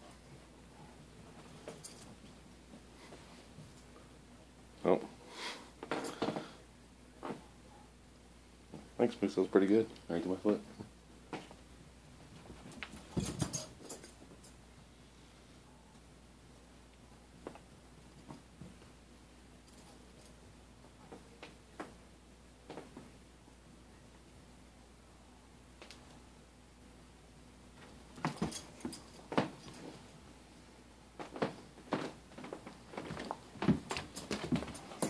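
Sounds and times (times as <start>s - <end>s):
paws thumping and scratching carpet: 31.2s - 35.0s.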